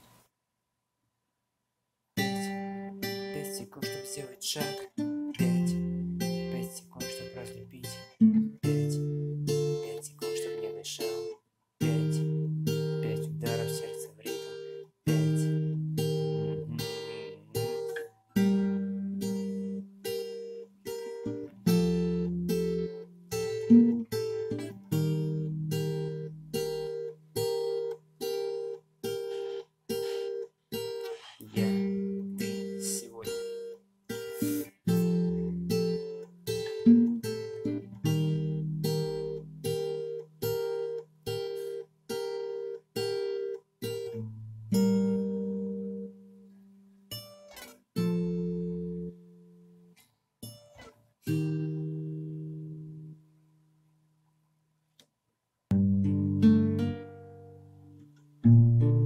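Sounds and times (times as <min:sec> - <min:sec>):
fingerpicked acoustic guitar: 0:02.2 - 0:55.1, 0:55.7 - 0:59.0.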